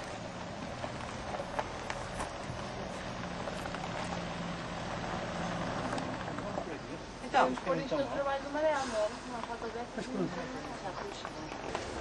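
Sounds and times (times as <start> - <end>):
distant engine hum: 0.0 - 7.6, 8.2 - 12.0
outdoor background noise: 0.0 - 12.0.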